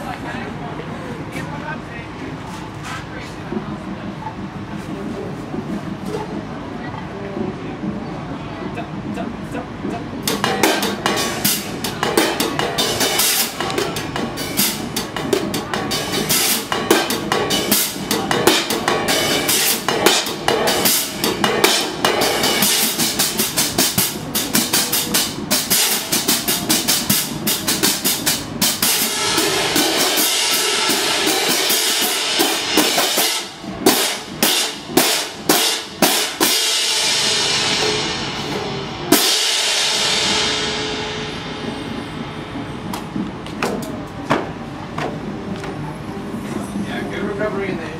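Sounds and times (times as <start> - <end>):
marching crash cymbals: 10.3 - 42.9.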